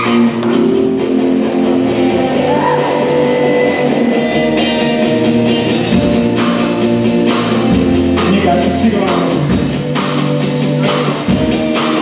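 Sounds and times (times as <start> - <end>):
electric guitar chords: 0.0 - 12.0
live rock band playing: 0.0 - 12.0.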